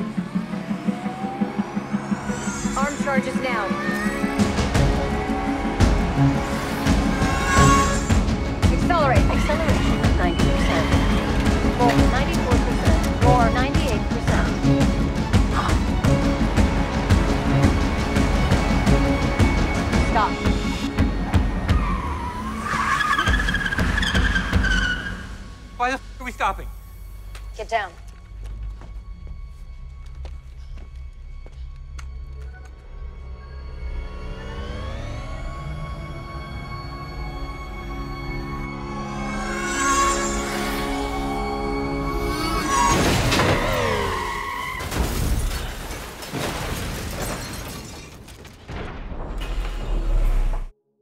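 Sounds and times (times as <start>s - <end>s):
dramatic orchestral score: 0.0s - 29.7s, 32.0s - 46.2s
car tyres squealing: 3.8s - 8.6s, 21.1s - 25.8s, 38.8s - 45.6s
car skidding: 21.2s - 25.8s, 42.2s - 46.2s
glass breaking: 44.8s - 48.6s.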